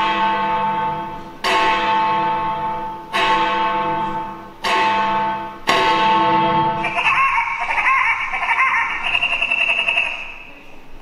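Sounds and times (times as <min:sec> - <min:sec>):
bell-like clock chiming: 0:06.8 - 0:10.6.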